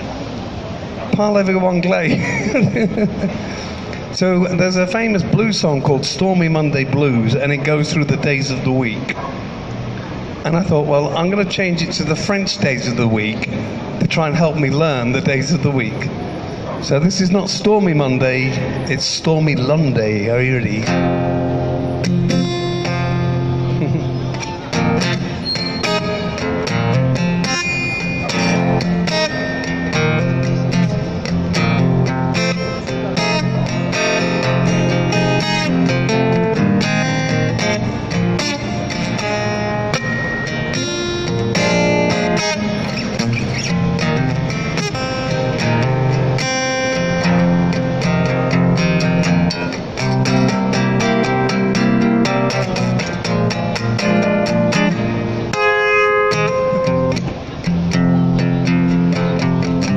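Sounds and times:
blues acoustic guitar: 1.1 - 59.9.

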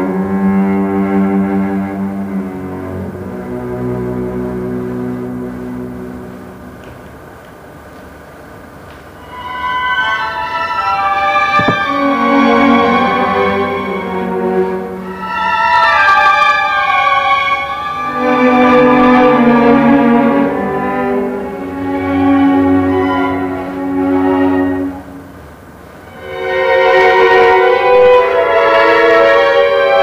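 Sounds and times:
cello with string orchestra: 0.0 - 6.9, 9.2 - 30.0.

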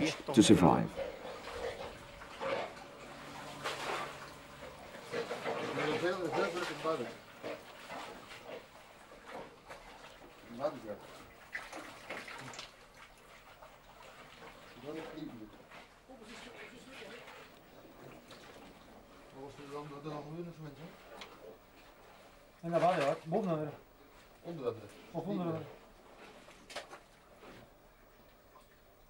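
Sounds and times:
water and mud sloshing: 0.8 - 27.7.

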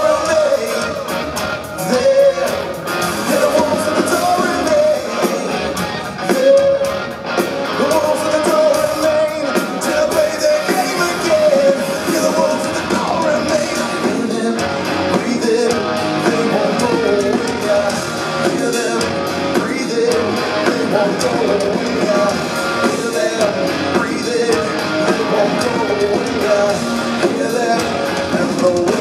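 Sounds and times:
bass guitar: 0.0 - 29.0
drum kit beat: 0.0 - 29.0
electric guitars: 0.0 - 29.0.

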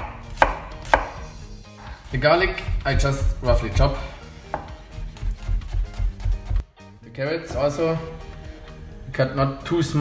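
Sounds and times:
knife chopping on cutting board: 0.0 - 1.4, 4.5 - 4.9.

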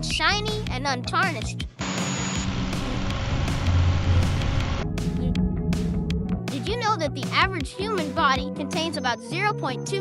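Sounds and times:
background music: 0.0 - 10.0
rock drill boring into rock: 1.8 - 4.8.

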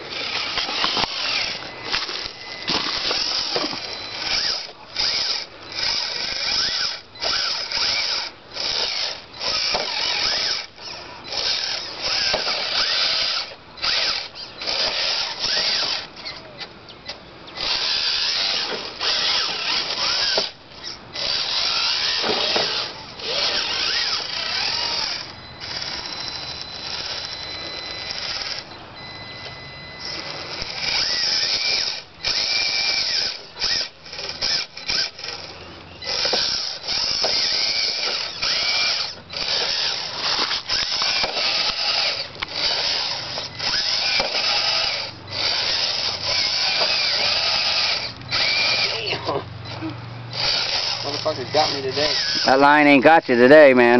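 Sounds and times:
truck grinding over rocks: 0.0 - 16.6, 17.6 - 28.7, 30.0 - 52.6
electric motor whining: 0.0 - 53.9.

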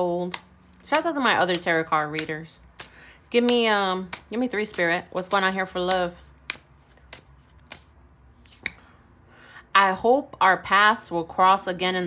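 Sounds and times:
cards clicking: 0.0 - 8.8.

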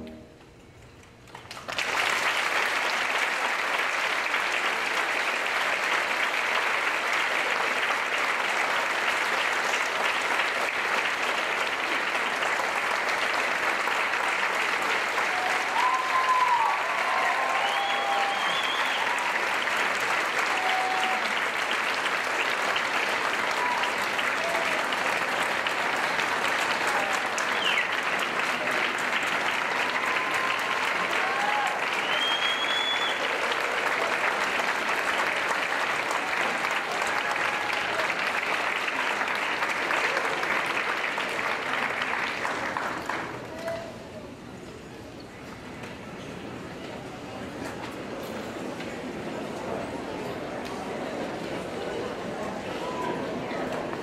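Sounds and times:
audience applauding: 1.3 - 44.4
whoops and cheers: 15.2 - 19.5, 20.4 - 21.5, 23.4 - 24.9, 29.7 - 33.5, 36.7 - 38.2, 43.5 - 44.2.

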